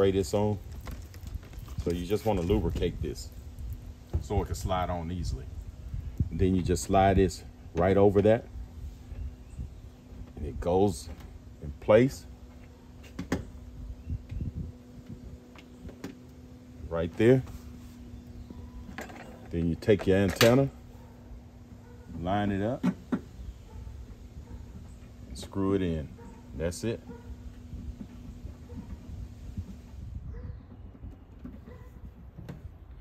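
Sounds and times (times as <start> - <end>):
low outdoor rumble: 0.0 - 33.0
microphone handling rustle: 17.1 - 19.5
cloth brushing against microphone: 17.4 - 18.2.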